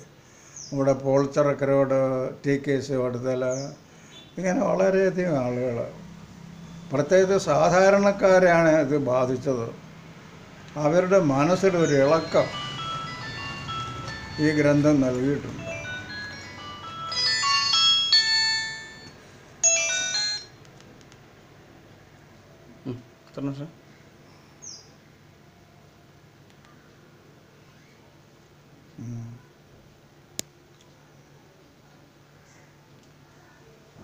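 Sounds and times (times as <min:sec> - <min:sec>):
man's voice: 0:10.8 - 0:12.6
high falling chirp: 0:10.8 - 0:20.5
tinkling electronic tune: 0:11.1 - 0:20.6.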